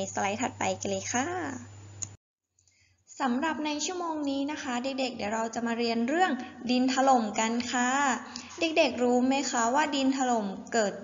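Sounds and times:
woman speaking: 0.0s - 1.7s, 3.2s - 11.0s.

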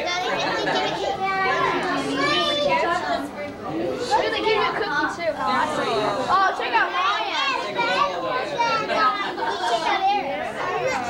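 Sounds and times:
several voices chattering: 0.0s - 11.0s.

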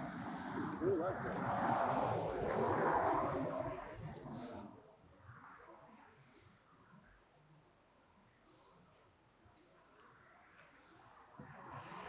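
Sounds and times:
vehicle passing by: 0.0s - 4.8s.

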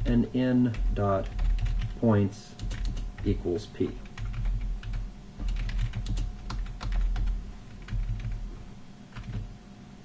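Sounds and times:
computer keyboard typing: 0.6s - 2.0s, 2.6s - 3.4s, 4.0s - 8.4s, 9.1s - 9.5s.

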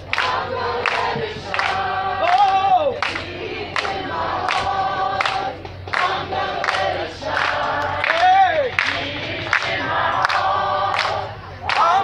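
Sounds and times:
crowd noise: 0.0s - 12.0s
group of people singing: 0.0s - 12.0s.

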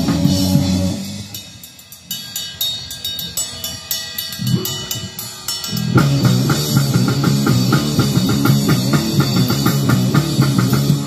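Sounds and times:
drums with cymbal hits: 0.0s - 11.0s
punk band playing live: 0.0s - 11.0s.

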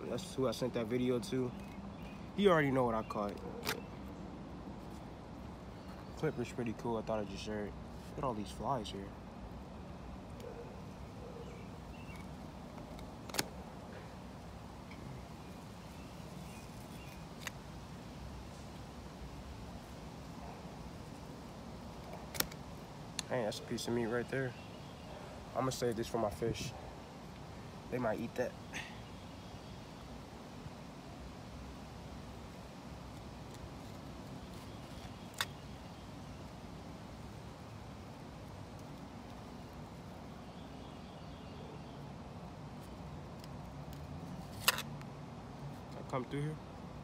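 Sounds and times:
steady low background noise: 0.0s - 47.0s.

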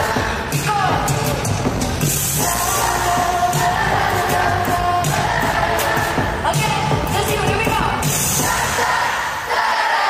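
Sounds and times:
audience singing along: 0.0s - 1.1s, 2.2s - 7.0s, 8.0s - 10.0s
steady drum beat: 0.0s - 9.2s
live pop music over sound system: 0.0s - 10.0s.

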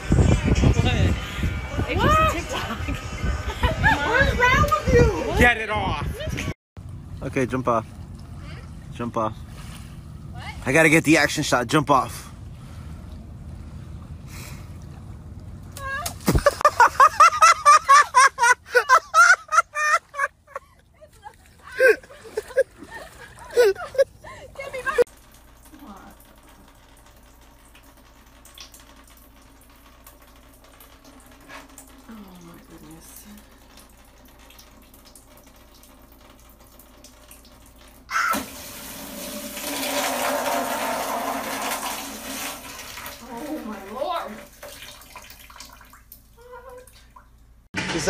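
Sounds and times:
water gushing and pouring down: 25.0s - 47.2s.

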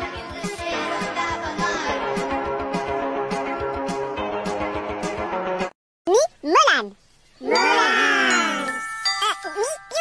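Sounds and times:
high-pitched falling voice: 7.4s - 10.0s
bell-like chime tones: 7.5s - 10.0s.

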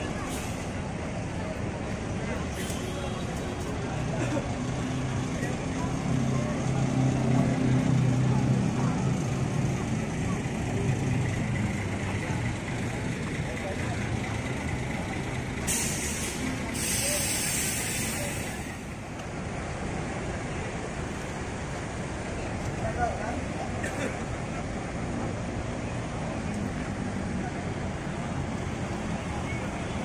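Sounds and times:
diesel bus engine running: 0.0s - 30.0s
air brake hiss: 15.6s - 18.9s.

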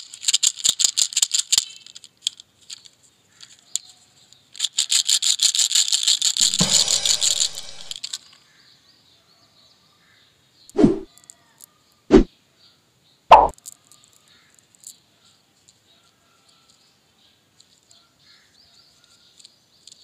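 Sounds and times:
candy rattling in plastic box: 0.0s - 8.2s.

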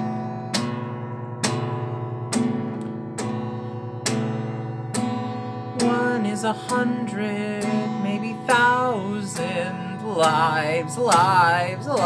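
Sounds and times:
strummed guitar chords: 0.0s - 12.0s.

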